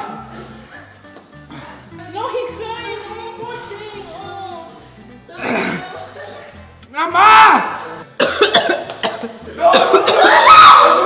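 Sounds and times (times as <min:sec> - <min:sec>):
man coughing: 0:05.4 - 0:05.9, 0:08.2 - 0:10.4
man crying out: 0:06.9 - 0:07.8.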